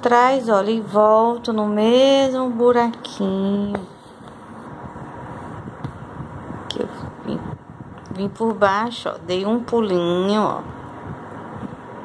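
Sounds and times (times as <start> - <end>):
fabric rustling: 3.8 - 6.2.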